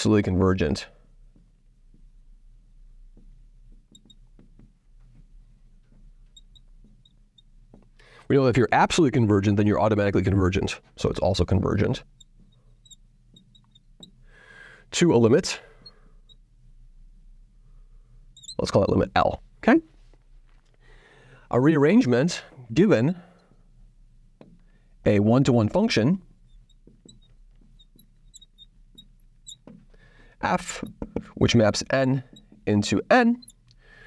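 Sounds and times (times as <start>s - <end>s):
marker squeaking on glass: 3.9s - 4.2s, 6.3s - 7.6s, 11.7s - 14.2s, 18.4s - 18.9s, 26.3s - 33.7s.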